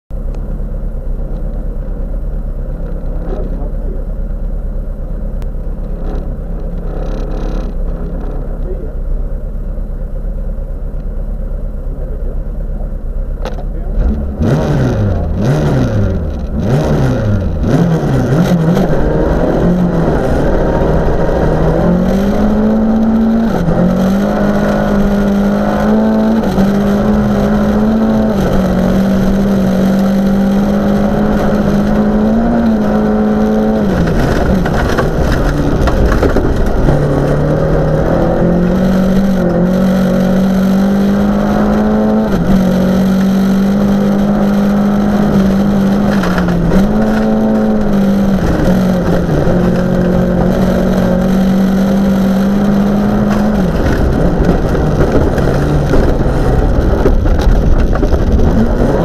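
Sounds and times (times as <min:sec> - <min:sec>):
car engine revving: 0:00.2 - 0:59.0.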